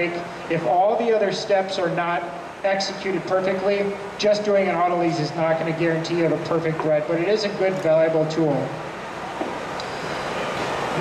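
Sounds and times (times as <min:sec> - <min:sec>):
rushing outdoor background noise: 0:00.0 - 0:11.0.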